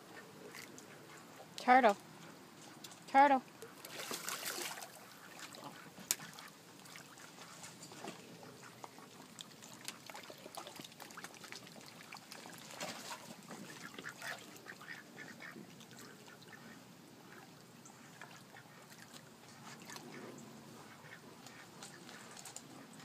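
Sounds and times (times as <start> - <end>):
dog paddling splashing: 3.8 - 8.1, 8.8 - 14.7
ducks quacking: 13.6 - 19.0, 19.6 - 22.3.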